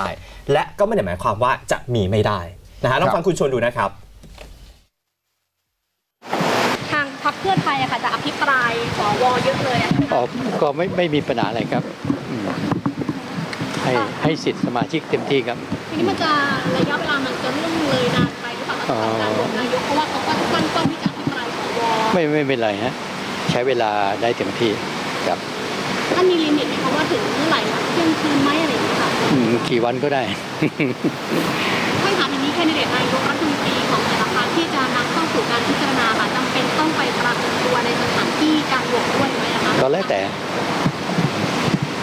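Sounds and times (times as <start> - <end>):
man speaking into microphones: 0.0 - 4.0, 10.0 - 12.8, 13.7 - 15.7, 18.9 - 19.6, 22.1 - 25.4, 29.3 - 30.6, 39.8 - 40.4
man's voice: 0.0 - 4.0, 10.0 - 12.8, 13.8 - 15.6, 18.9 - 19.6, 29.3 - 30.8
steady rushing noise: 6.2 - 42.0.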